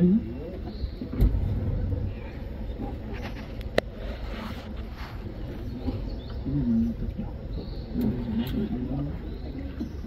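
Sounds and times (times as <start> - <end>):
boat motor rumbling: 0.0 - 10.0
voices talking quietly: 0.0 - 10.0.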